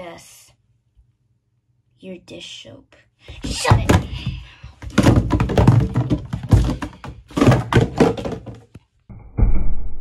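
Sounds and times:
plastic bottles clattering in bathtub: 0:03.4 - 0:08.8.

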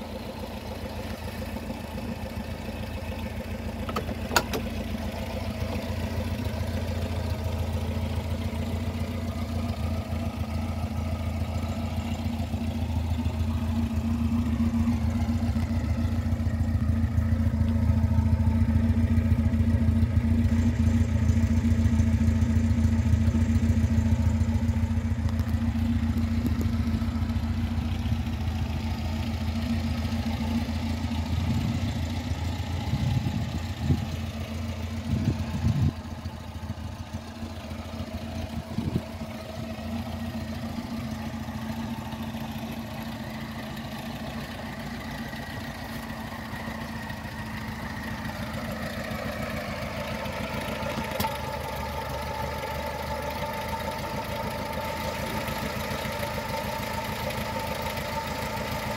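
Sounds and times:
car engine idling: 0:00.0 - 0:58.9.

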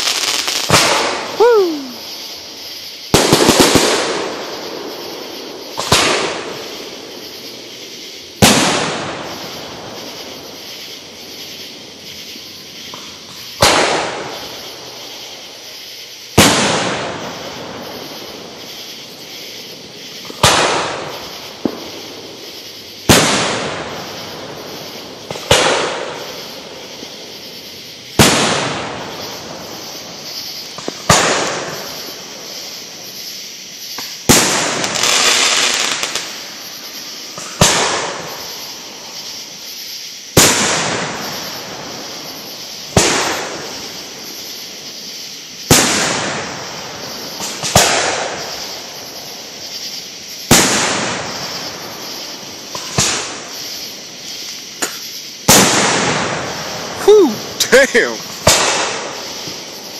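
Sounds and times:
firework shells booming: 0:00.0 - 0:02.2, 0:03.0 - 0:33.0, 0:33.9 - 0:39.4, 0:40.3 - 0:59.9
firework crackle: 0:00.0 - 0:59.9.

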